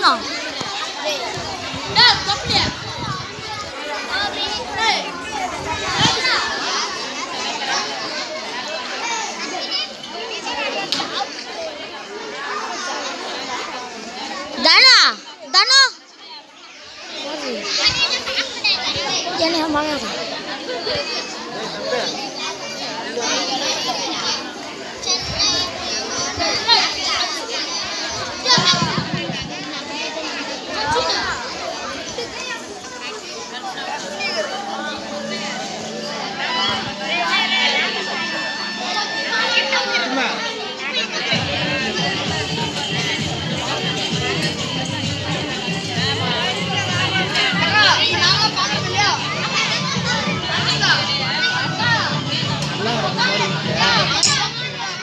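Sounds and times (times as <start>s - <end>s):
children chattering: 0.0s - 55.0s
shrill children's shouts: 0.0s - 55.0s.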